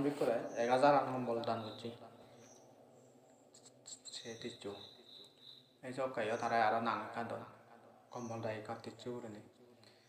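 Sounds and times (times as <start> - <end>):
man talking: 0.0 - 2.2, 3.9 - 5.1, 5.8 - 9.8
faint high-pitched chirping tones: 0.0 - 10.0.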